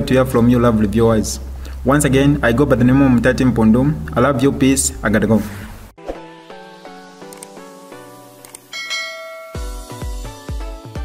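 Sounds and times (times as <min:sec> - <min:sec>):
light background music: 0:06.0 - 0:11.0
bell chime sound effect: 0:08.7 - 0:10.4.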